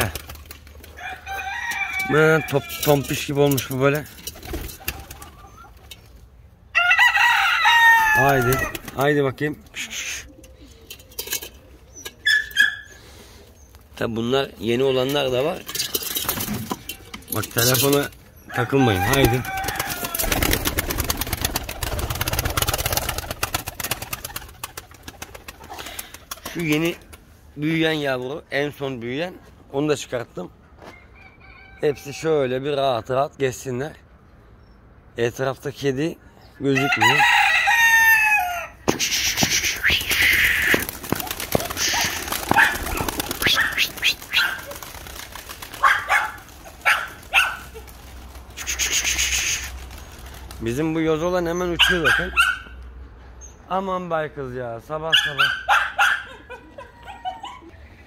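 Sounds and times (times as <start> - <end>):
pigeons flapping wings: 0.0 - 1.0, 3.5 - 6.0, 8.1 - 9.2, 18.9 - 27.3, 38.9 - 50.9
rooster crowing: 0.9 - 3.1, 6.7 - 8.8, 18.5 - 20.6, 30.8 - 32.3, 36.7 - 38.8.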